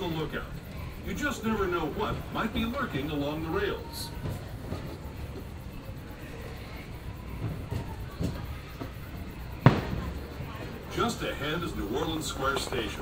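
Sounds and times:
train wheels rumbling on rails: 0.0 - 13.0.

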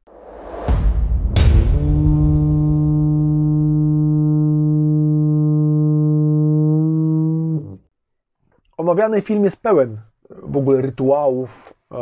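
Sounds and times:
wooden horn low note: 1.3 - 7.9.

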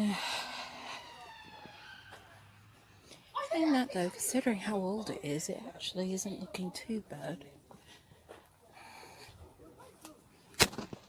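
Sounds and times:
distant siren falling in pitch: 0.2 - 3.0.

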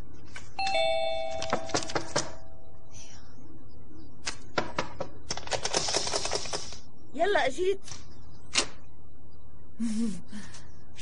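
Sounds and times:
two-tone doorbell chime: 0.6 - 1.6.

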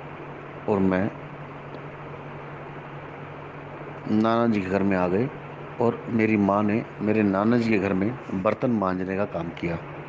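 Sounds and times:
low even hum: 0.0 - 10.0.

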